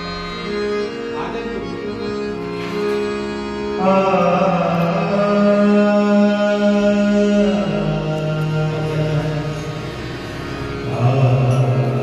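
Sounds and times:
harmonium holding long notes: 0:00.0 - 0:12.0.

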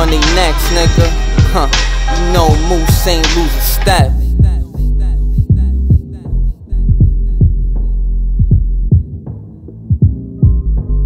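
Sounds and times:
deep kick drums: 0:00.0 - 0:11.0
sustained sub-bass: 0:00.0 - 0:11.0.

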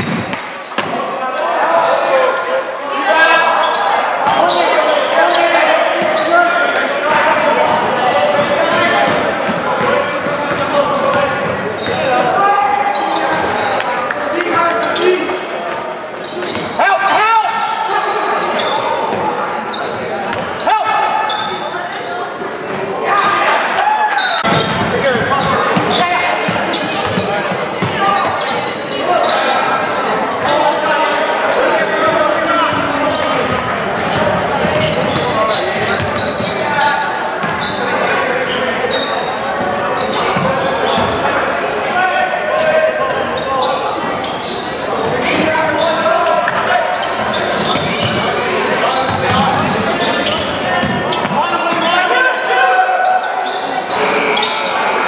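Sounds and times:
basketball bouncing on court: 0:00.0 - 0:01.0, 0:07.1 - 0:12.0, 0:24.4 - 0:28.1, 0:32.7 - 0:36.6, 0:47.3 - 0:48.4, 0:49.0 - 0:51.9
voices calling out: 0:00.0 - 0:55.0.

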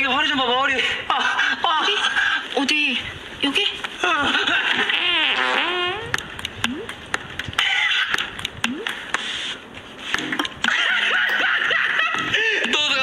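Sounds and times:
laughter: 0:01.1 - 0:02.4, 0:04.0 - 0:05.1, 0:10.6 - 0:12.8
wobbling fart noise: 0:04.7 - 0:09.0.

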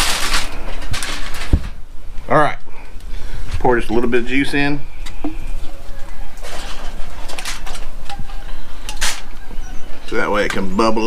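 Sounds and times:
foil crinkling and rustling: 0:00.0 - 0:01.8, 0:05.9 - 0:09.4.

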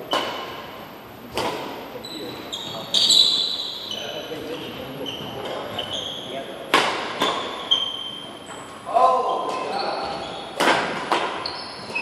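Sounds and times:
racket striking shuttlecock: 0:00.1 - 0:00.6, 0:01.3 - 0:01.8, 0:06.7 - 0:07.6, 0:10.6 - 0:11.4
shoes squeaking on wooden floor: 0:02.0 - 0:06.5, 0:07.2 - 0:12.0.

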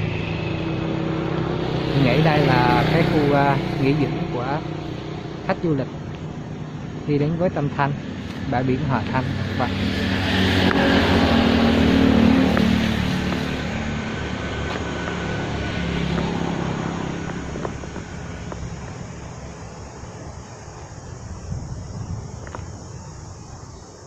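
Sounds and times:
vehicle engine running: 0:00.0 - 0:23.0.

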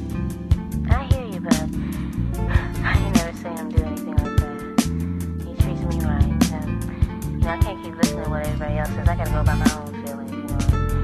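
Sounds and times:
steady bass line: 0:00.0 - 0:11.0.

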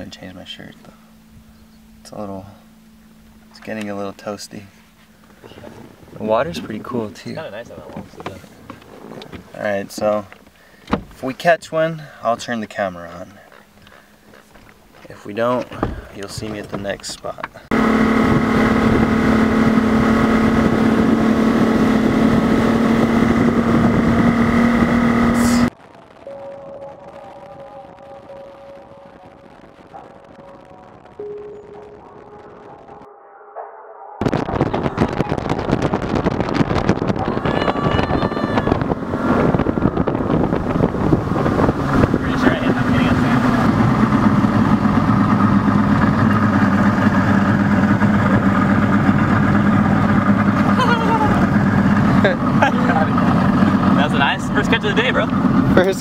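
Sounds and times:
outboard motor running: 0:00.0 - 0:11.1, 0:13.2 - 0:16.9, 0:17.5 - 0:25.7, 0:34.2 - 0:56.0.

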